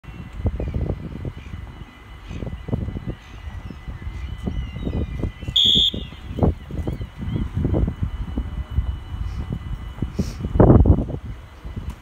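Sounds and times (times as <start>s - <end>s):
gusty low rumble: 0.0s - 12.0s
high beep signal tone: 1.4s - 11.1s.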